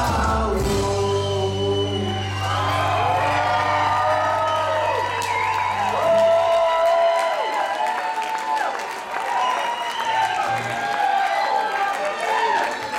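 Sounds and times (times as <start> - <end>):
live band holding final chord: 0.0 - 6.9
audience whooping: 0.6 - 12.9.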